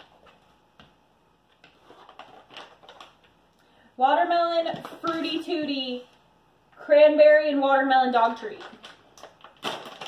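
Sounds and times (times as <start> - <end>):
package crinkling and clicking: 1.5 - 3.4, 8.6 - 10.0.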